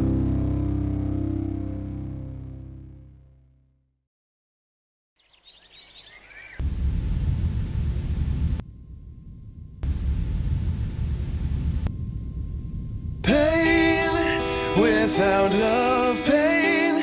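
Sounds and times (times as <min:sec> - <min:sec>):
loud deep rumbling noise: 0:06.6 - 0:14.8
faint steady tone: 0:08.6 - 0:16.1.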